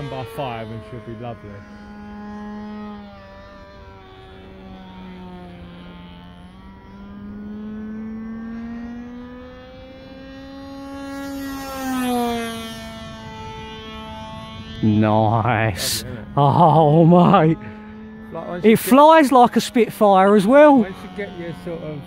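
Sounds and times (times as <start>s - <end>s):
model airplane engine buzzing: 0.0s - 22.0s.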